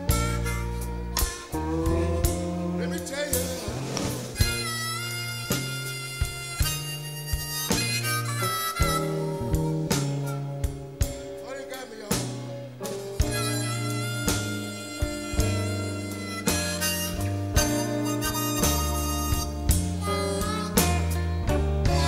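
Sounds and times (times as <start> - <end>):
lead instrument bending notes: 0.0 - 22.0
slow blues band instrumental: 0.0 - 22.0.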